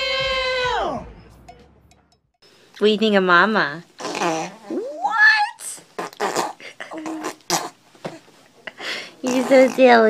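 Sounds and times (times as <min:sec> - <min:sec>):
baby blowing raspberries: 0:04.0 - 0:04.9, 0:06.0 - 0:07.8, 0:09.1 - 0:10.0.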